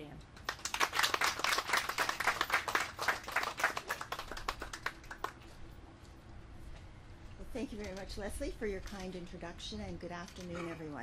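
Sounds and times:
small audience applauding: 0.4 - 5.6.

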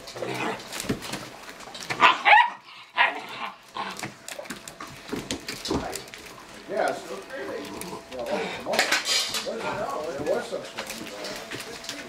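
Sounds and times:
puppies barking: 0.0 - 11.7.

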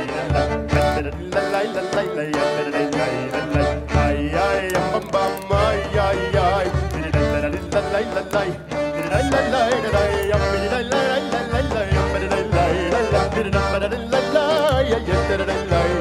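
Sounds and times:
klezmer band playing: 0.0 - 16.0.

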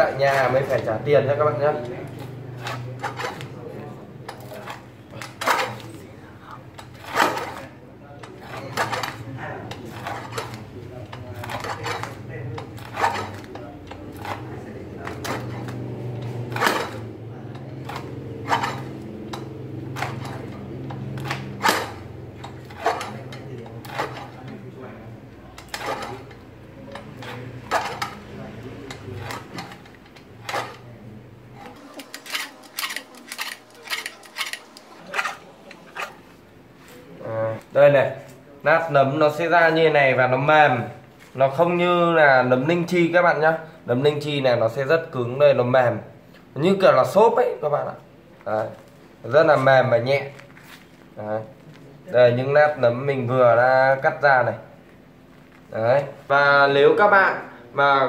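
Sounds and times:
guillotine cutter chopping mushroom: 6.8 - 24.6, 25.4 - 30.9.

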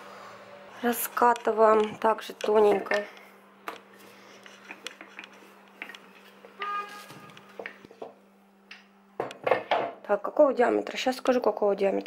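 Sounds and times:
brief pitched tone: 6.6 - 7.3.

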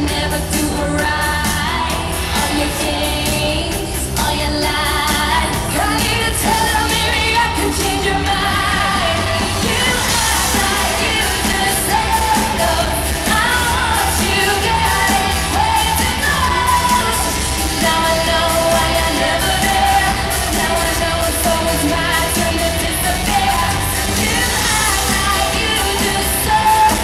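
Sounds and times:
live pop-rock band playing: 0.0 - 27.0.

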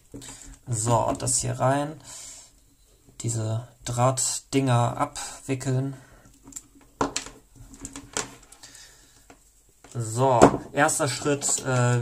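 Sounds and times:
cable rustling: 6.3 - 8.6, 10.7 - 12.0.

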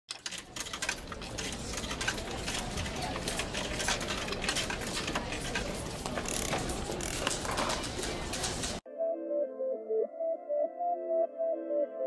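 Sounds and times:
mechanical clicks clattering: 0.1 - 8.8.

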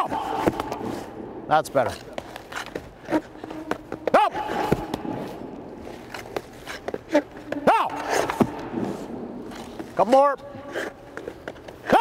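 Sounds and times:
skates scraping on ice: 0.0 - 12.0
pads and stick knocking on ice: 1.8 - 10.3.

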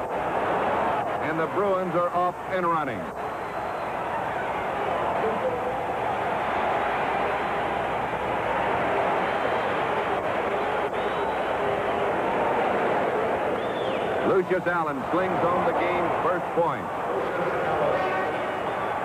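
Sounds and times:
arena crowd din: 0.0 - 19.0.

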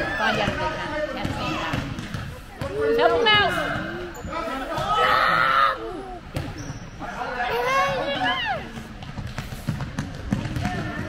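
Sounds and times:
spectators' voices: 0.0 - 11.0
basketball bounce on wooden floor: 9.0 - 11.0.

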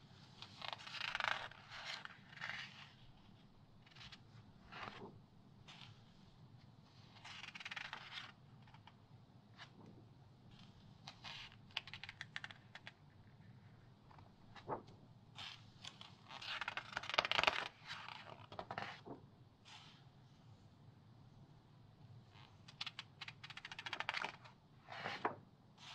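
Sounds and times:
magazine pages turning: 14.1 - 19.2, 22.7 - 25.4.

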